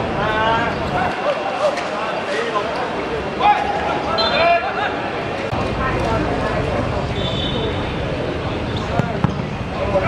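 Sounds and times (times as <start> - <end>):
voices of players and onlookers: 0.0 - 10.0
football kicked thump: 8.9 - 9.6.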